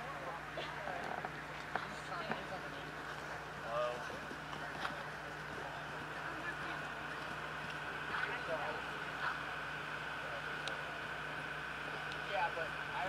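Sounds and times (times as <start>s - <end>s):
background hum: 0.0s - 13.0s
distant indistinct voices: 0.0s - 13.0s.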